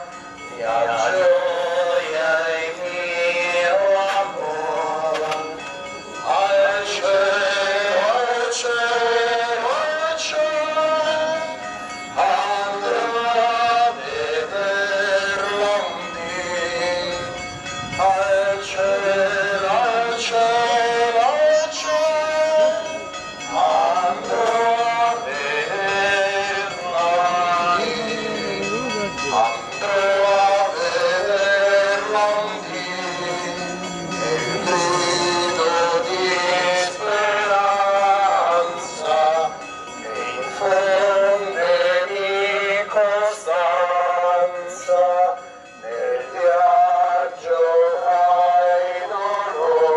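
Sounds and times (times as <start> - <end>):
voices singing a hymn: 0.0 - 11.6, 12.2 - 49.9.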